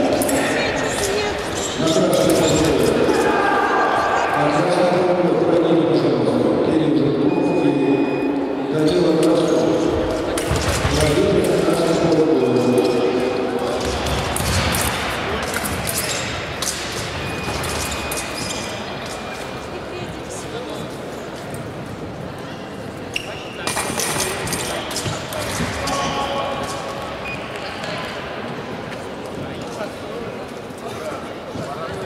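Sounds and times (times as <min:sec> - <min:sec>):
voices echoing in hall: 0:00.0 - 0:32.0
faint high beeps: 0:07.2 - 0:08.7.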